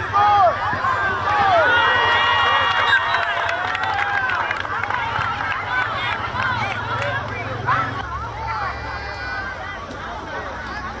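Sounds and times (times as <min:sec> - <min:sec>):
young voices shouting: 0:00.0 - 0:09.8
referee whistle: 0:02.7 - 0:03.4.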